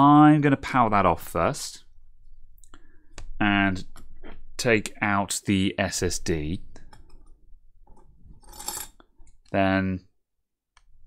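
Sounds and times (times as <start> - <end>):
tool scraping: 7.9 - 9.3.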